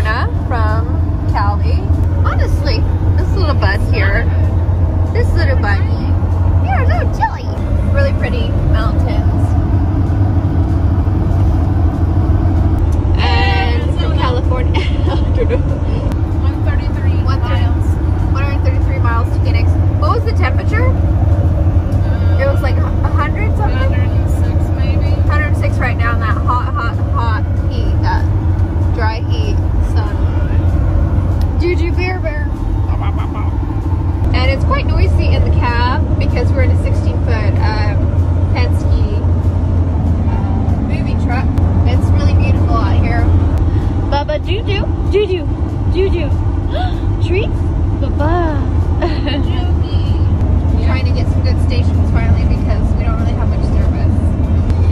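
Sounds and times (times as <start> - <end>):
people talking: 0.0 - 9.6, 13.1 - 21.0, 22.0 - 30.7, 31.4 - 33.6, 34.2 - 39.4, 40.2 - 54.9
truck cabin road drone: 0.0 - 54.9.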